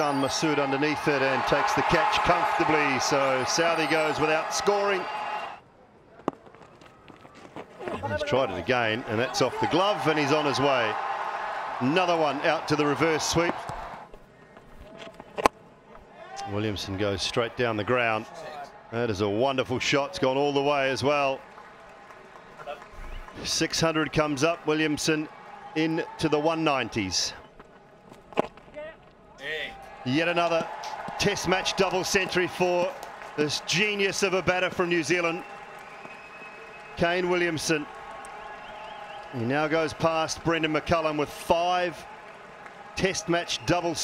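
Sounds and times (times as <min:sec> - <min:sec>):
players calling out: 0:00.0 - 0:05.6, 0:07.3 - 0:14.1
faint cricket ground ambience: 0:00.0 - 0:44.0.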